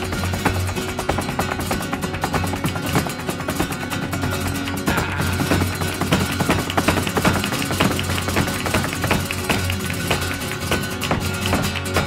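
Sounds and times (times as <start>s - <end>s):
dancer's footwork strikes: 0.0s - 12.0s
flamenco guitar: 0.0s - 12.0s
rhythmic hand-clapping: 0.0s - 12.0s.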